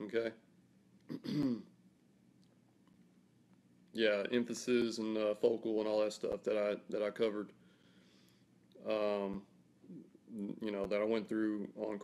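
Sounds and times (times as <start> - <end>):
man clearing his throat: 1.1 - 1.7.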